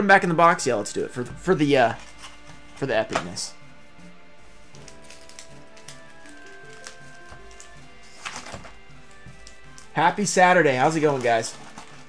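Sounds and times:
soft sustained background music: 0.0 - 12.0
crinkling packs: 1.8 - 3.4, 4.5 - 12.0.

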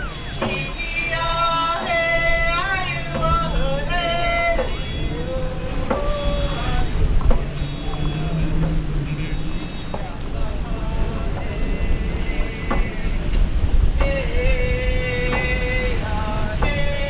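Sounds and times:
group singing traditional song: 0.0 - 17.0.

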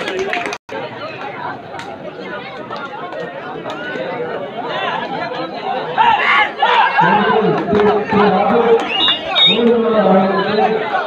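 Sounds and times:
crowd chattering and calling: 0.0 - 11.0
loud shouts: 5.8 - 11.0.

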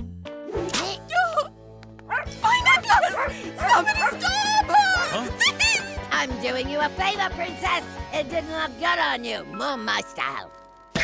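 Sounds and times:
cartoon dog barking: 2.1 - 4.6
woman yelling: 2.4 - 6.0.

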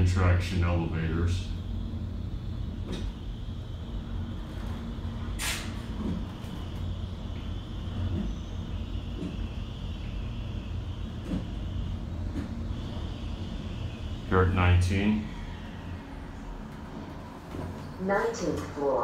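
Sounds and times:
elevator ride rumble: 0.0 - 19.0
faint high hum: 0.0 - 19.0
short hiss: 5.4 - 5.8.

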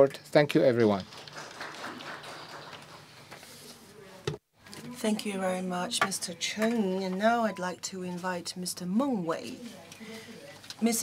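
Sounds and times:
faint applause: 1.1 - 3.1.

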